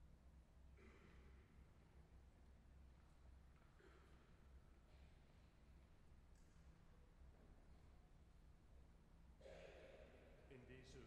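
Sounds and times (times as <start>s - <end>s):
breath close to microphone: 9.4s - 10.4s
faint man's voice: 10.5s - 11.0s.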